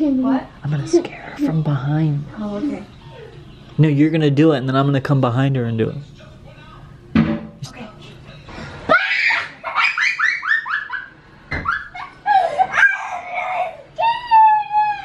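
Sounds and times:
children giggling and squealing: 8.9s - 15.0s.

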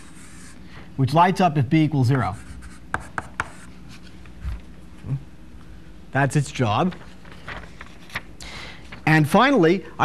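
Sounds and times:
steady low hum: 0.0s - 10.0s
chalk tapping on blackboard: 2.3s - 3.7s.

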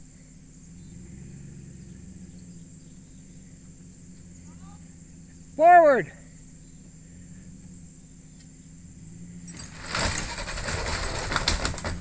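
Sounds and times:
wooden house crackling and clattering: 9.5s - 12.0s.

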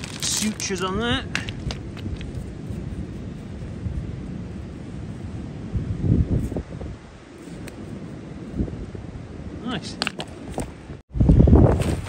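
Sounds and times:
wind blowing on microphone: 0.0s - 12.0s.

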